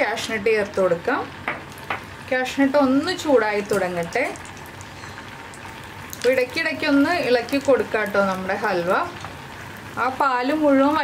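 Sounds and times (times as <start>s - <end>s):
nuts sizzling in hot fat: 0.0s - 11.0s
sharp crackles: 3.7s - 6.7s.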